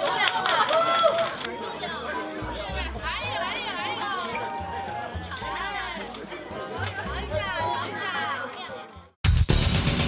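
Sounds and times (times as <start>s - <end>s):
group of voices exclaiming: 0.0s - 1.5s.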